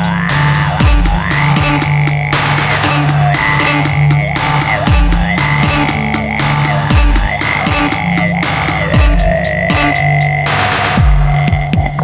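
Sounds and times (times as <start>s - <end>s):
deep kick drums: 0.0s - 12.0s
electronic hip-hop beat: 0.0s - 12.0s
low droning hum: 0.0s - 12.0s
noisy snare hit: 2.4s - 3.2s, 10.5s - 11.3s.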